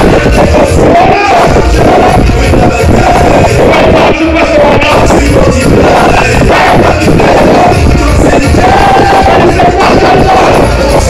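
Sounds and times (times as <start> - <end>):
heavy bass beat: 0.0 - 11.0
soca music with singing: 0.0 - 11.0.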